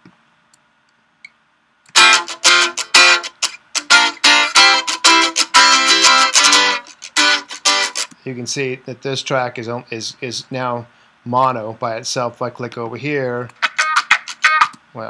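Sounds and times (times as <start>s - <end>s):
click: 0.0s - 2.0s
guitar chords strummed rhythmically: 1.9s - 8.1s, 13.5s - 14.8s.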